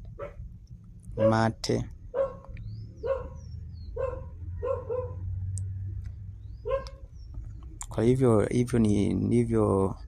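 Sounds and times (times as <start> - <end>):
steady low hum: 0.0 - 10.0
dog barking: 0.2 - 0.4, 1.2 - 1.5, 2.1 - 5.3, 6.6 - 7.0.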